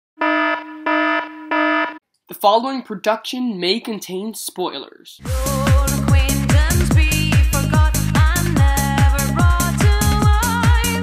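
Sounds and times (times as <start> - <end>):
warning alarm buzzer: 0.2 - 2.0.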